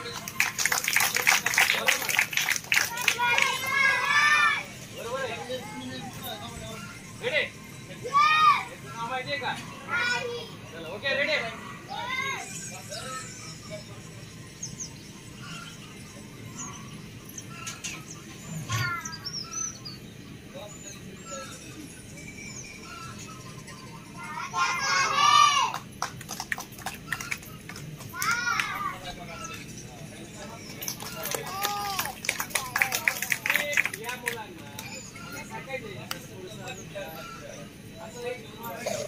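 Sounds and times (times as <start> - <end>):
children calling out: 2.7 - 4.8, 8.0 - 8.7, 24.2 - 25.8, 28.1 - 29.0, 31.4 - 32.2.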